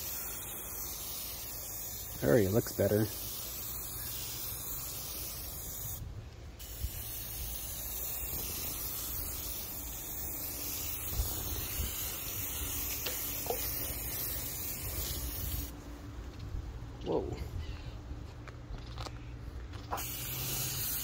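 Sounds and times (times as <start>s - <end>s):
spray-paint can hissing: 0.0s - 6.0s, 6.6s - 15.7s, 19.9s - 21.0s.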